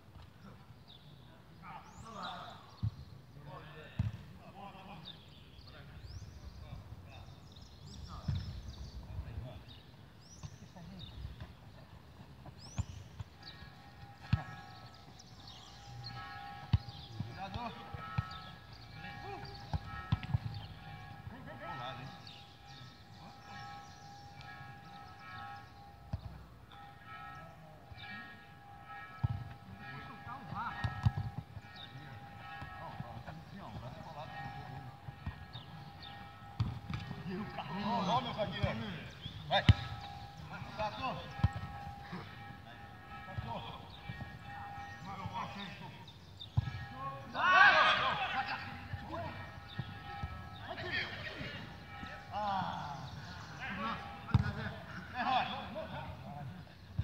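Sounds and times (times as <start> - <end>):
football being kicked: 3.9 - 4.3, 36.6 - 37.2, 39.6 - 40.0, 54.3 - 54.7.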